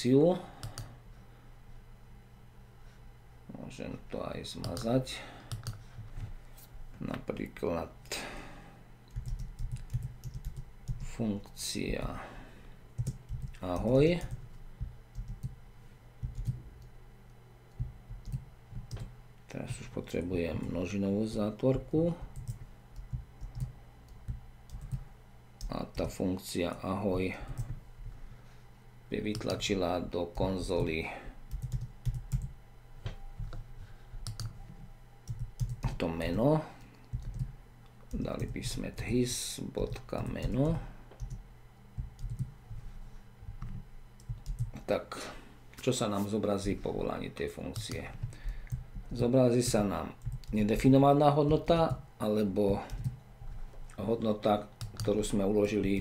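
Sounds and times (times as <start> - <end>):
computer keyboard typing: 0.6 - 0.9, 5.5 - 5.8, 9.1 - 11.1, 13.0 - 15.6, 16.2 - 16.6, 17.7 - 19.1, 22.4 - 25.0, 29.3 - 29.6, 30.8 - 32.5, 34.2 - 34.6, 35.2 - 36.0, 37.1 - 37.5, 39.8 - 41.4, 42.0 - 42.5, 43.6 - 44.8, 47.7 - 50.9, 52.7 - 53.2, 54.8 - 55.3.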